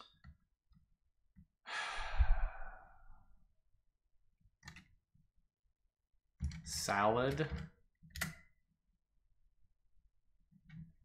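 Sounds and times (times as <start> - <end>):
person sighing: 1.7 - 3.2.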